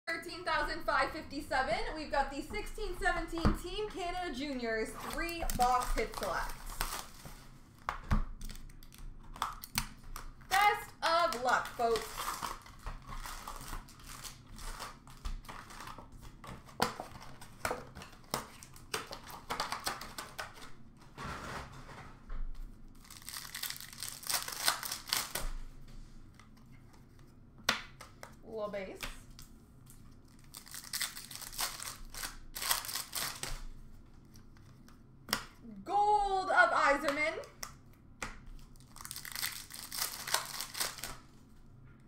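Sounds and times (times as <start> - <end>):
wrappers torn and crinkled: 5.0 - 7.3, 8.4 - 16.0, 22.9 - 25.5, 30.2 - 33.7, 38.6 - 41.3.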